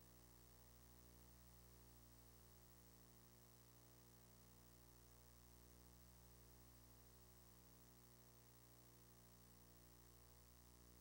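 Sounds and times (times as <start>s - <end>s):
faint mains hum: 0.0s - 11.0s.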